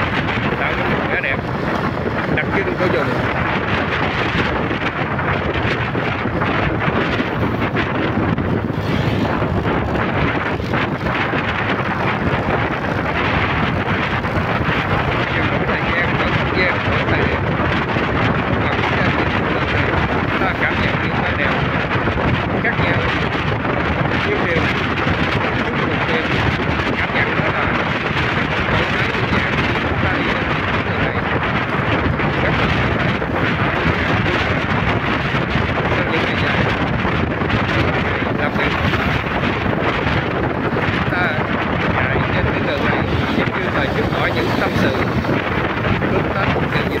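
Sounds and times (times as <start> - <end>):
motorbike running: 0.0 - 47.0
wind rushing over microphone: 0.0 - 47.0.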